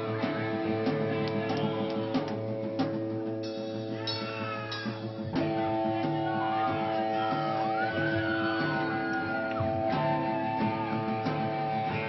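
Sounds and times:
drumming: 0.0s - 12.0s
high wavering guitar squeal: 3.4s - 12.0s.

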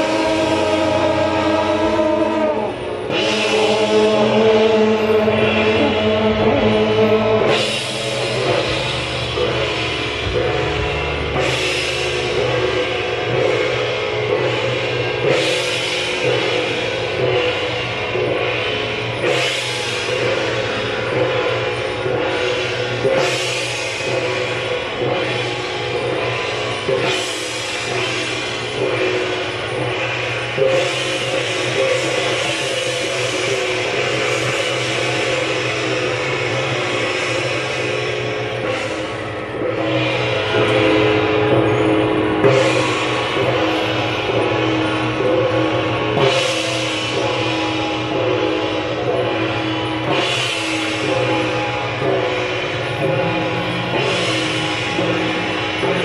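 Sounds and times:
loud cymbal crash: 0.0s - 56.0s
percussion: 0.0s - 56.0s.

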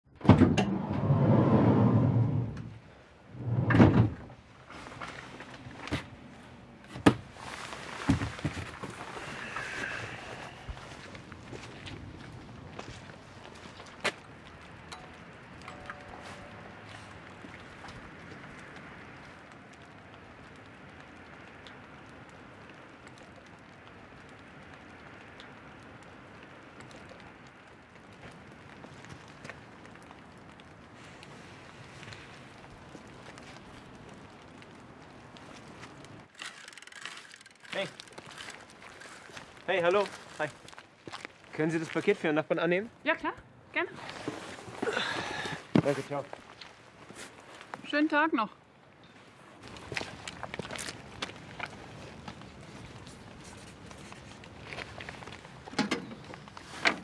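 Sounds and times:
sliding door rumbling along track: 0.2s - 2.7s, 3.4s - 4.2s.

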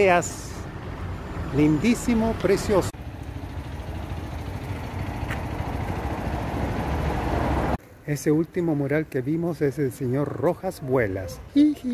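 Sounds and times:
vehicle engine rumbling: 0.0s - 10.4s.

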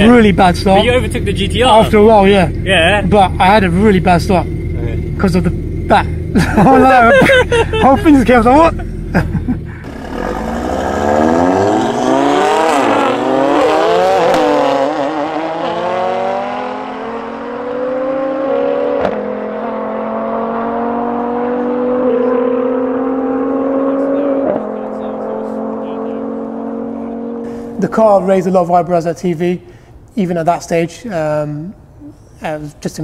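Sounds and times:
cars accelerating hard: 0.0s - 28.6s.

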